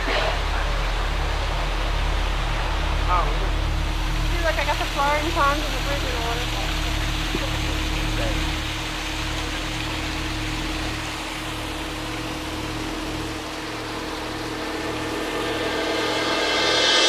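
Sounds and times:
falling water rushing: 0.0s - 17.0s
low steady hum: 0.0s - 17.0s.

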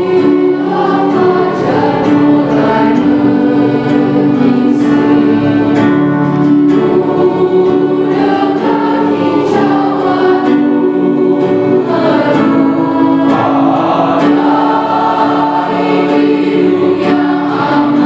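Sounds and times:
choir singing in parts: 0.0s - 18.0s.

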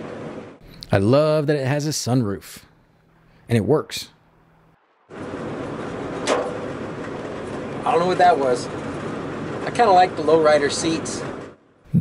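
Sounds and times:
road and wind rush in car: 0.0s - 0.6s, 4.8s - 11.8s.

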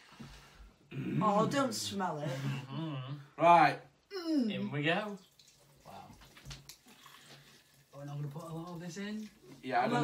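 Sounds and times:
fizzy drink pouring: 4.9s - 10.0s.

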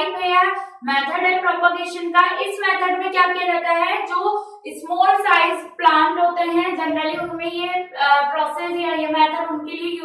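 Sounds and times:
woman lecturing: 0.0s - 10.0s.

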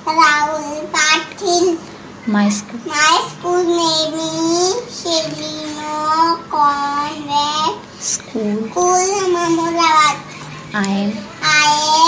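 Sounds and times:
girl spelling out letters: 0.0s - 12.0s.

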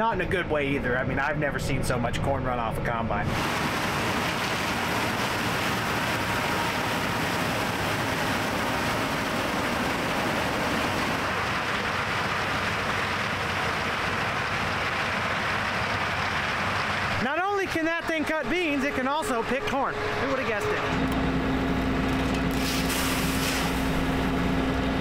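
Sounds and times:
combine harvester running: 3.2s - 25.0s.

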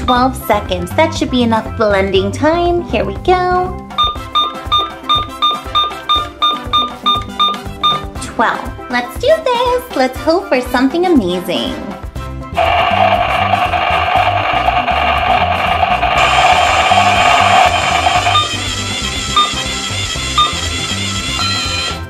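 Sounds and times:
background music with steady beat: 0.0s - 22.0s
short beeps: 4.0s - 8.0s, 16.2s - 18.6s
toy blender whirring: 12.6s - 22.0s.

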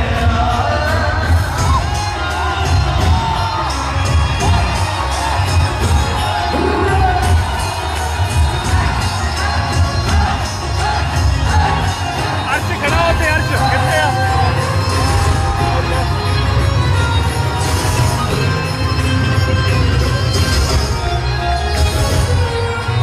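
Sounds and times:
singing: 0.0s - 16.0s
crowd cheering: 0.0s - 23.0s
live music with pulsing bass: 0.0s - 23.0s.

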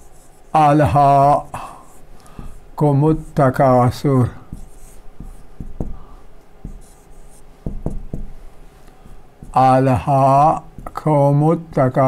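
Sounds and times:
marker scratching on whiteboard: 0.0s - 11.2s
marker tip tapping: 4.5s - 6.0s, 6.6s - 8.3s.

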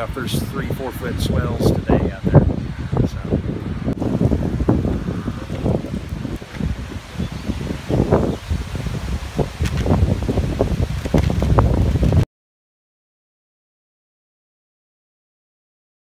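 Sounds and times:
wind buffeting microphone: 0.0s - 12.2s.

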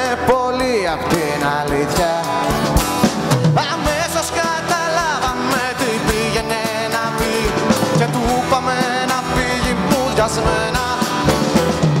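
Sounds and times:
man singing: 0.0s - 2.8s, 3.4s - 12.0s
acoustic guitars: 0.0s - 12.0s
steady drum beat: 0.0s - 12.0s.

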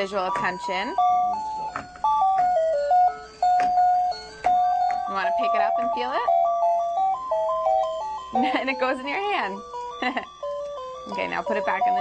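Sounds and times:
electronic beeping toy melody: 0.0s - 12.0s.

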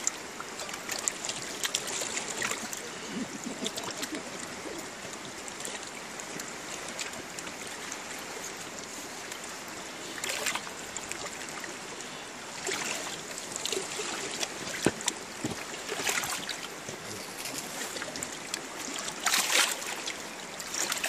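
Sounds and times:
river water rushing around boat: 0.0s - 21.0s.

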